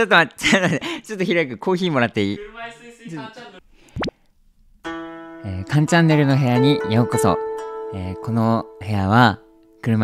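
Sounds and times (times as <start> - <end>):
plucked guitar background music: 4.9 - 10.0.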